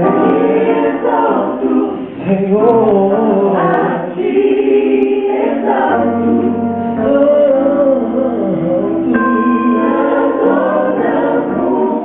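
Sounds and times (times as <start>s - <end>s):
gospel choir singing: 0.0s - 12.0s
man singing lead: 2.2s - 4.1s, 7.0s - 10.5s.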